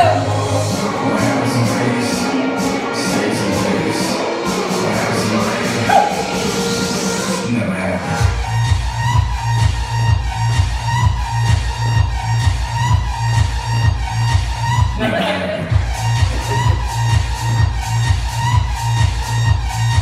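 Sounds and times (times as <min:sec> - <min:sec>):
electronic dance music: 0:00.0 - 0:20.0
heavy bass beat: 0:00.0 - 0:20.0.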